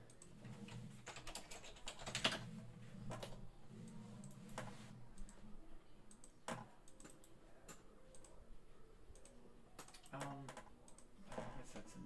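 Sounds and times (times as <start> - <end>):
keyboard and mouse clicks: 0.0 - 5.4, 6.1 - 8.4, 9.1 - 11.4.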